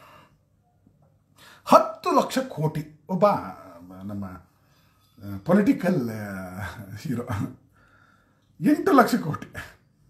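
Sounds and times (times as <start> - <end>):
man speaking loudly: 1.7 - 4.4, 5.2 - 7.6, 8.6 - 9.8.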